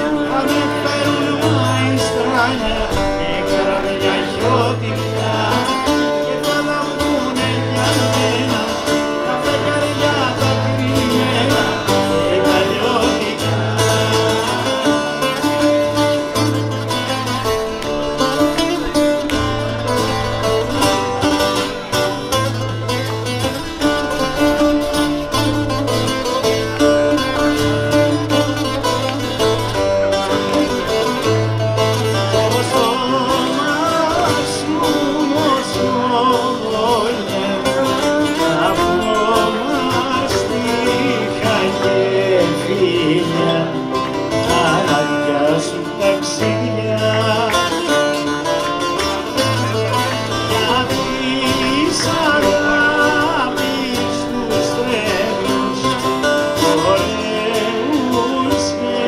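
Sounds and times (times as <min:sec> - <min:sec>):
low bass line: 0:00.0 - 0:44.9
man singing: 0:00.0 - 0:59.0
strummed acoustic guitar: 0:00.0 - 0:59.0.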